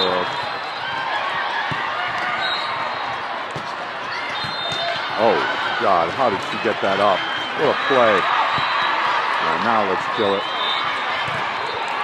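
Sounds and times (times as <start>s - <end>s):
crowd voices hubbub: 0.0s - 12.0s
hands hitting volleyball: 0.8s - 5.0s, 8.4s - 9.0s, 10.8s - 12.0s.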